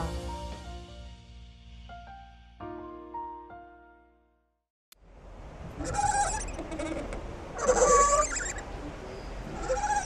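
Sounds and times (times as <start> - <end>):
animal-like calls: 5.7 - 10.0.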